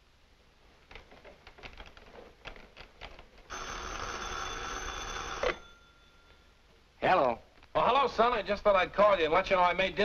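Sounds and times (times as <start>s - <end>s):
telephone bell ringing: 3.5s - 6.6s.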